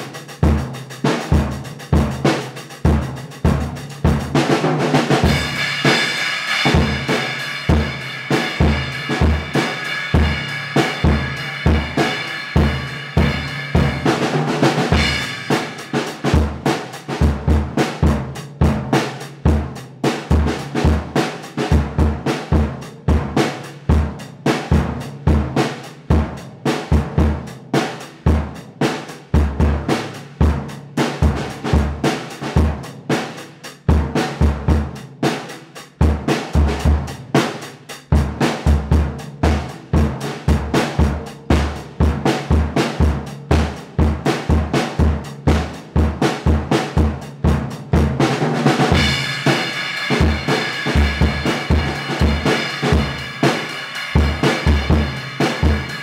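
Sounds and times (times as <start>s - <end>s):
drum kit rock groove: 0.0s - 56.0s.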